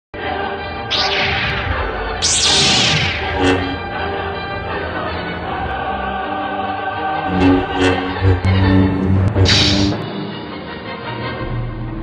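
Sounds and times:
trailer music sustained chords: 0:00.8 - 0:06.3, 0:07.2 - 0:12.0
loud swishing hits: 0:00.9 - 0:05.7, 0:07.3 - 0:10.1.

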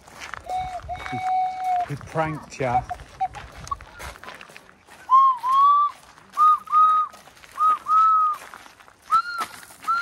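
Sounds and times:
footsteps crunching on gravel: 0:00.0 - 0:10.0.

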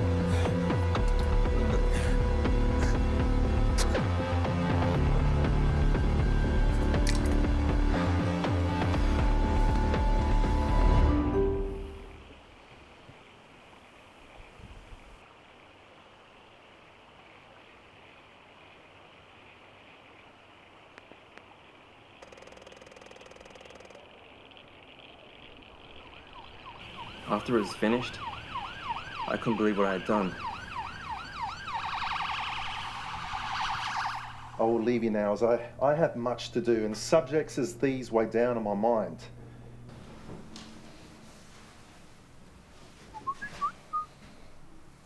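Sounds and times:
faint steady hiss: 0:09.4 - 0:45.0
emergency vehicle sirens wailing: 0:26.1 - 0:34.8
person whistling: 0:43.2 - 0:44.1.

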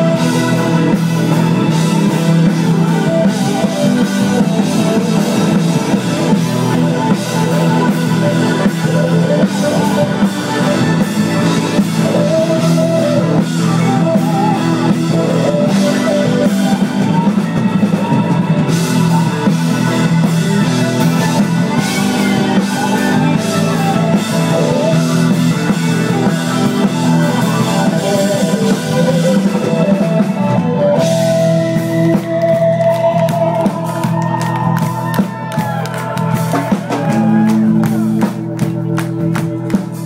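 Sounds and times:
drum kit: 0:00.0 - 0:40.0
electric guitars: 0:00.0 - 0:40.0.

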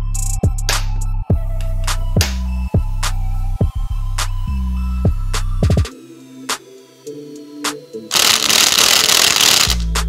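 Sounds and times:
music with heavy bass: 0:00.0 - 0:05.9.

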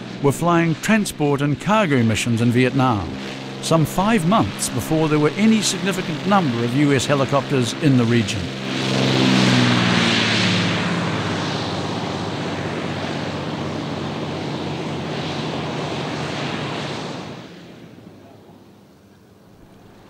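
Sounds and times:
low engine drone: 0:00.0 - 0:20.0
propeller roar: 0:00.0 - 0:20.0.

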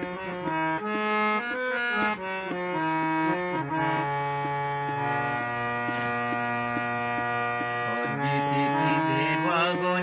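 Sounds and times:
harmonium chord over drone: 0:00.0 - 0:10.0.

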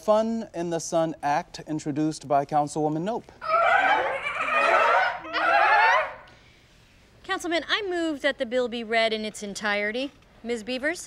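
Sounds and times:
woman squealing with excitement: 0:03.4 - 0:06.3.

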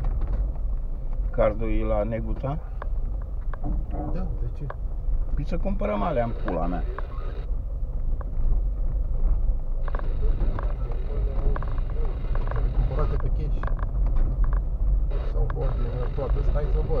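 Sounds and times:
car cabin low rumble: 0:00.0 - 0:17.0.

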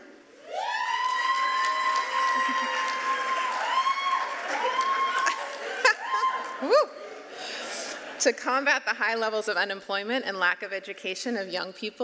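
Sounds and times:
person cheering woooo: 0:00.4 - 0:07.0
crowd applause: 0:00.5 - 0:08.0.

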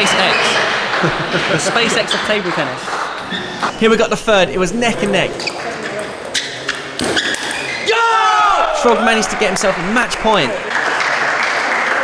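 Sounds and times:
loud celebratory shout: 0:07.8 - 0:10.7.

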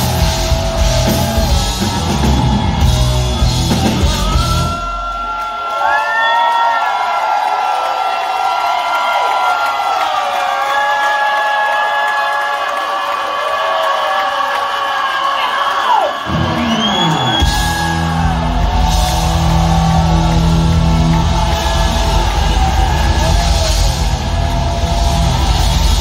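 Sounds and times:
full rock band playing: 0:00.0 - 0:05.5, 0:16.2 - 0:26.0
crowd cheering and whooping: 0:00.0 - 0:26.0.

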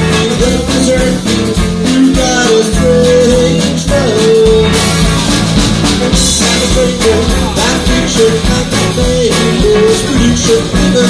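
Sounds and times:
steady drum beat: 0:00.0 - 0:11.0
upright bass: 0:00.0 - 0:11.0.

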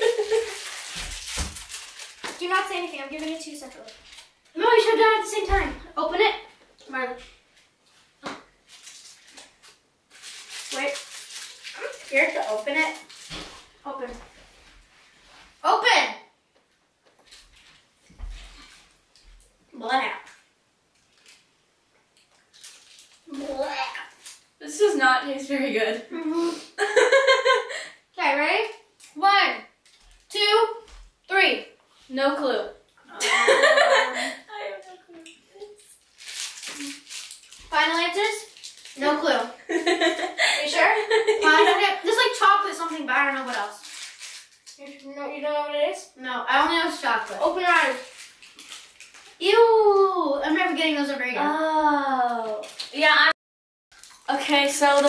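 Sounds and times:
girls talking: 0:04.6 - 0:07.2, 0:30.3 - 0:35.8, 0:37.7 - 0:43.8, 0:49.4 - 0:53.4
girl's voice: 0:23.3 - 0:26.5, 0:33.9 - 0:35.9, 0:40.4 - 0:43.8, 0:44.8 - 0:48.1, 0:49.4 - 0:53.4.

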